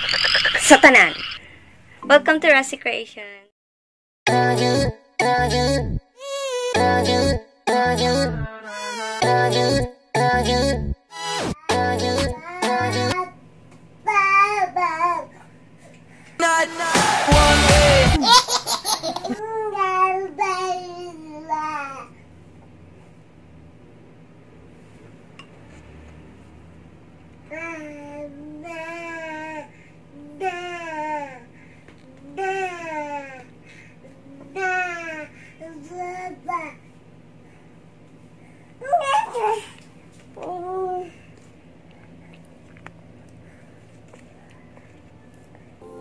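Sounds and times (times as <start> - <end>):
music track: 4.3 - 13.2, 16.7 - 18.2
baby singing: 5.5 - 7.2, 7.9 - 9.8, 11.6 - 13.4.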